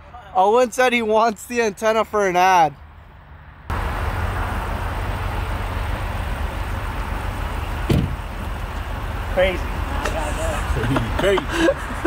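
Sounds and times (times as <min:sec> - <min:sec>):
car engine idling: 0:03.7 - 0:12.0.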